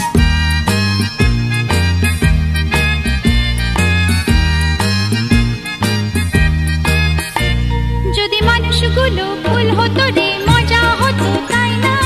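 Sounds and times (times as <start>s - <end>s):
ornamented melody over bass line: 0.0s - 12.0s.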